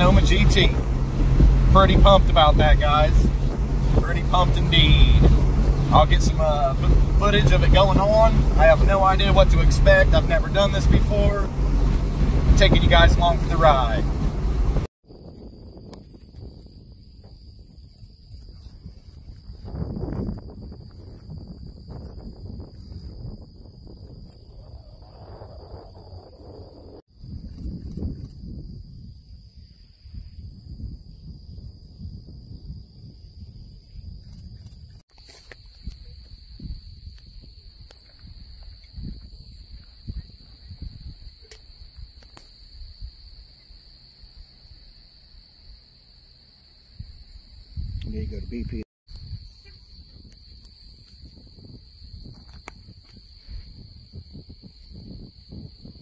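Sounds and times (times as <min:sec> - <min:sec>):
wind rumbling on microphone: 0:00.0 - 0:43.6, 0:46.9 - 0:56.0
insects droning: 0:00.0 - 0:56.0.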